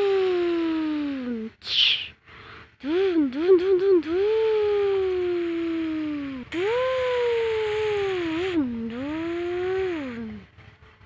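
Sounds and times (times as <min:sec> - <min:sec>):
person imitating truck engine: 0:00.0 - 0:02.2, 0:02.8 - 0:10.5.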